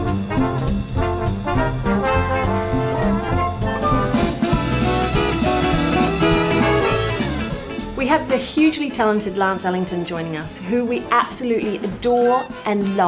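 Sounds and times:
trumpets and trombones: 0.0s - 7.8s
orchestra playing jazzy music: 0.0s - 8.4s.

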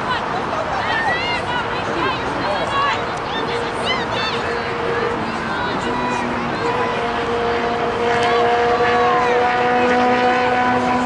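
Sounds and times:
faint shouts: 0.0s - 7.8s
steady motor drone: 0.3s - 11.0s.

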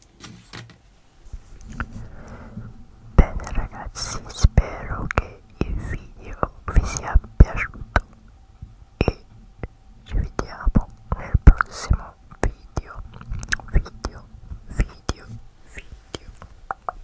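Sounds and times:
breathy whispering: 1.3s - 8.4s, 9.0s - 16.6s
mouth clicks: 9.0s - 17.0s.

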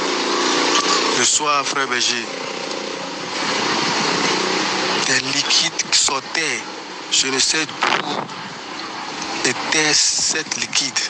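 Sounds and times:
rushing engine noise with hum: 0.0s - 11.0s.

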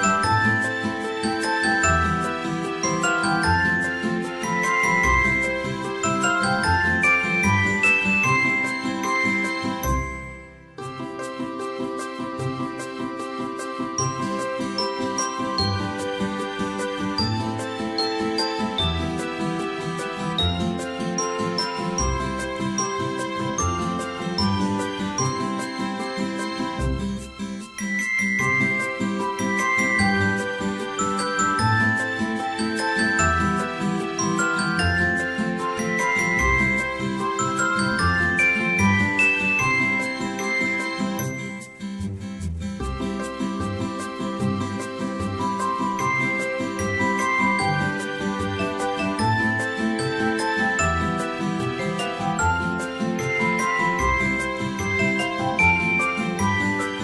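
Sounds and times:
light tune with bell-like chimes: 0.0s - 57.0s
ticking beat: 0.0s - 57.0s
bass notes: 26.8s - 27.4s, 42.0s - 49.6s.

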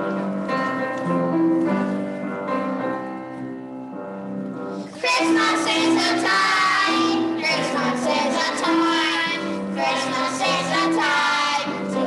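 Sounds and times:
children singing: 5.0s - 12.0s.

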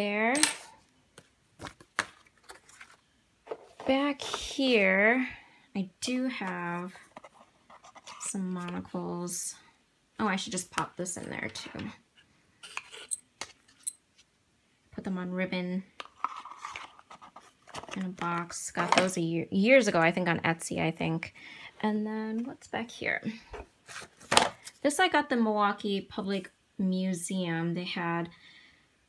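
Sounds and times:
paper rustling: 1.2s - 3.9s.

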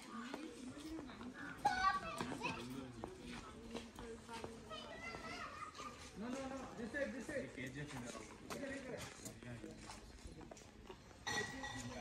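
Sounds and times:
people and children chattering: 0.0s - 12.0s.

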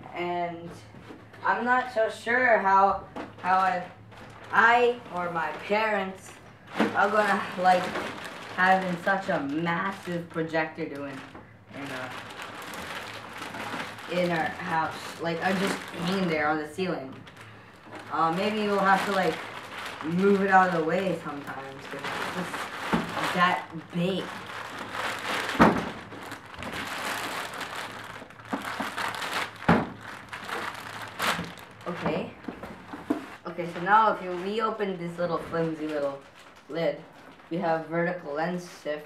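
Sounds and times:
plastic wrapping rustling: 0.6s - 38.8s.

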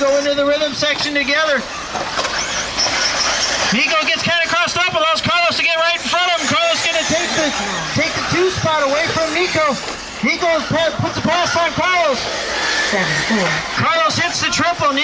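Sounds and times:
man talking quickly: 0.0s - 1.7s, 3.7s - 12.3s, 13.7s - 15.0s
electric rc motors whining: 0.0s - 15.0s.

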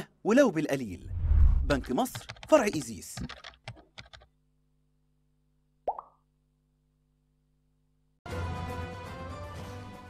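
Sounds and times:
voiceover speech: 0.2s - 3.3s
faint steady hum: 4.3s - 8.2s
pop sound effect: 5.9s - 6.2s.

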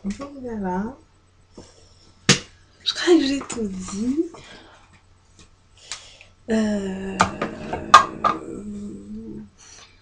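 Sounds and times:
woman saying euh: 6.5s - 9.5s.

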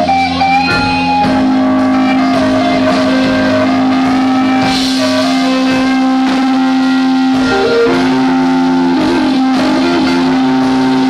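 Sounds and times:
electric guitar lead bending notes: 0.0s - 11.0s
live rock band: 0.0s - 11.0s.

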